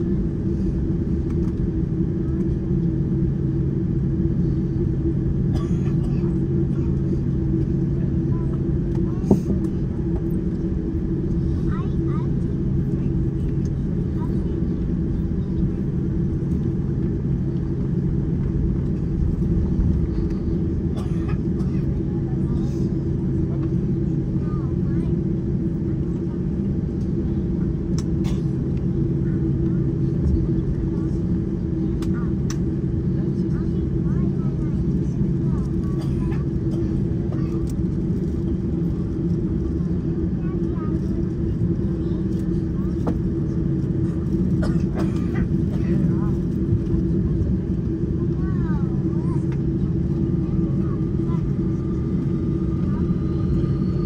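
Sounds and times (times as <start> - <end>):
jet engines droning: 0.0 - 54.0.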